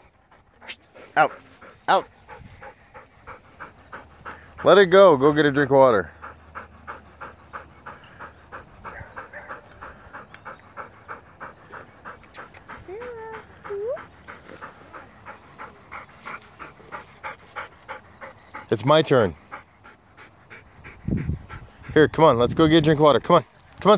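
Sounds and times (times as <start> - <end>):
dog panting: 0.0 - 23.9.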